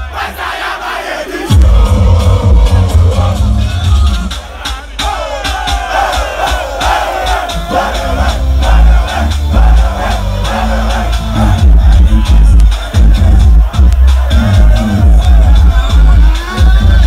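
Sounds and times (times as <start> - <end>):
crowd cheering: 0.0 - 17.0
live concert music with bass beat: 0.0 - 17.0.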